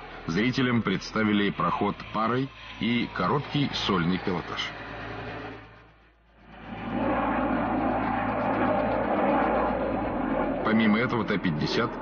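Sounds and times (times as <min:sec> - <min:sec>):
fighter jet flying overhead: 0:00.0 - 0:12.0.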